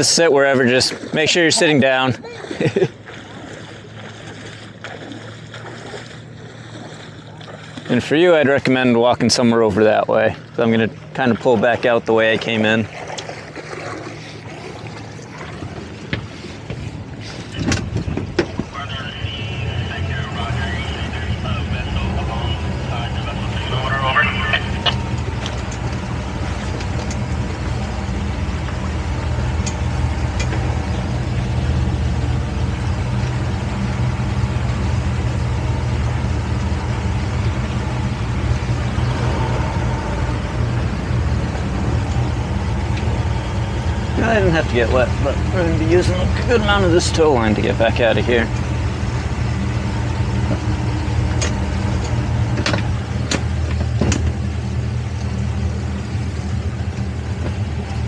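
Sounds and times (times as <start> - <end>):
outboard motor humming: 0.0 - 58.0.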